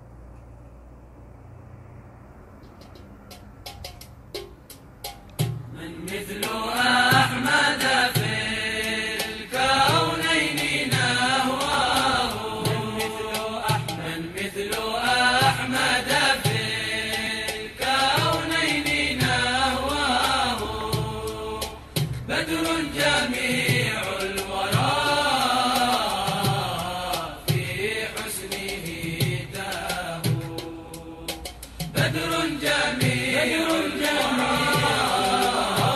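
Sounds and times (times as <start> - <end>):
soft low beat: 2.6 - 7.5, 10.9 - 14.2
low drum beat: 2.8 - 7.5, 9.2 - 14.3, 18.1 - 25.1, 26.0 - 35.9
person singing a religious chant: 5.7 - 35.9.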